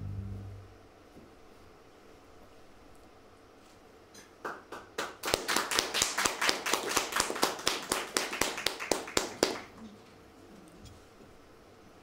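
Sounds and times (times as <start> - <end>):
audience applauding: 4.4 - 9.8.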